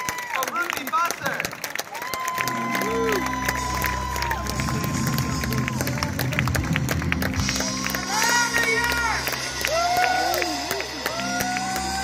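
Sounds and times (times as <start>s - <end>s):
crowd cheering and whooping: 0.0s - 0.6s, 1.8s - 12.0s
audience applauding: 0.0s - 12.0s
live band through pa: 2.3s - 12.0s.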